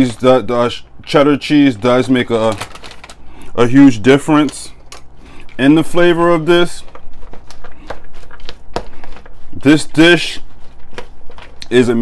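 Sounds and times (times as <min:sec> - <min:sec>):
salad rustling in plastic bowl: 0:01.7 - 0:12.0.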